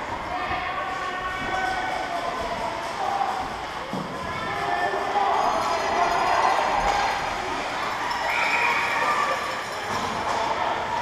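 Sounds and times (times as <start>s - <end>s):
steady background din: 0.0s - 11.0s.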